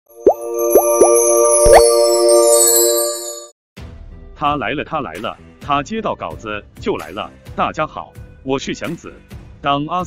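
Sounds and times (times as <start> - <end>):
bubble pop effects: 0.2 - 2.0
bright sustained chord: 0.2 - 3.5.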